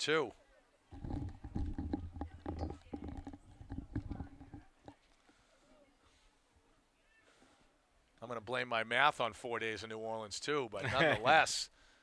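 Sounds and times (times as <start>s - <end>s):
irregular knocks and thumps: 0.9s - 5.0s.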